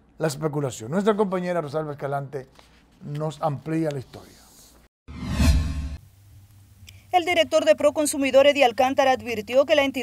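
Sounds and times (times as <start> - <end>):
whoosh with deep low boom: 5.1 - 6.0.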